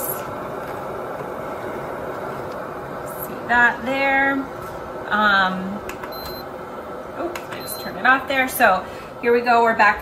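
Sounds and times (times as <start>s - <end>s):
short high beeps: 6.1s - 6.4s.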